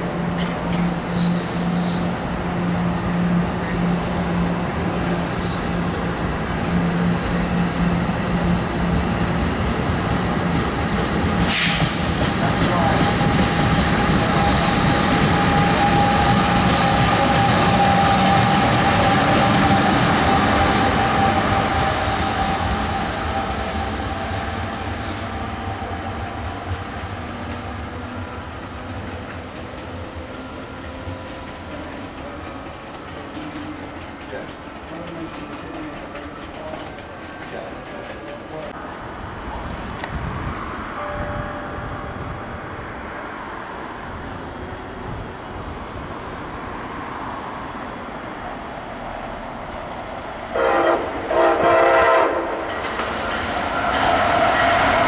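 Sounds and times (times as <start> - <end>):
locomotive whine: 0.0 - 32.6, 38.8 - 55.0
train wheels rumbling on rails: 0.0 - 55.0
high wheel squeal: 0.4 - 2.2, 5.0 - 6.0, 14.3 - 23.6, 53.2 - 55.0.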